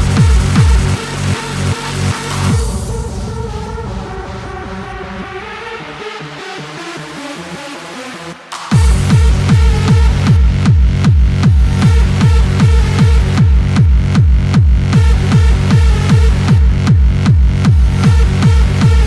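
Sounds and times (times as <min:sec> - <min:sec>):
heavy kick drum: 0:00.0 - 0:03.7, 0:08.7 - 0:19.0.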